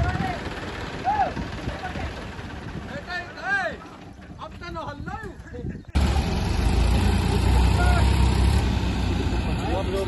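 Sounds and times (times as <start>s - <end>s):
tractor engines droning under load: 0.0s - 10.0s.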